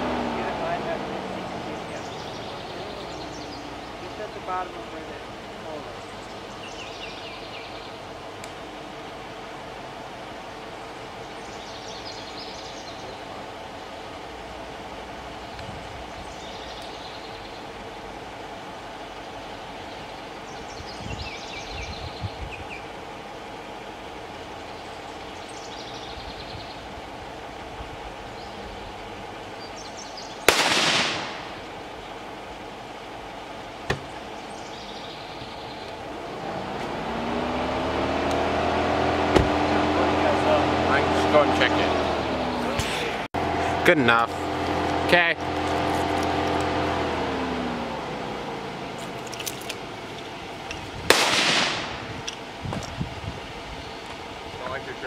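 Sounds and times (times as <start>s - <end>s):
engine rising in pitch: 0.0s - 5.2s, 35.2s - 50.7s
bird chirping: 0.4s - 4.7s, 5.8s - 8.1s, 10.8s - 14.5s, 15.4s - 17.8s, 19.2s - 22.9s, 24.5s - 27.0s, 28.3s - 30.5s, 34.0s - 36.0s
gunshot: 30.5s - 31.6s, 51.1s - 52.0s.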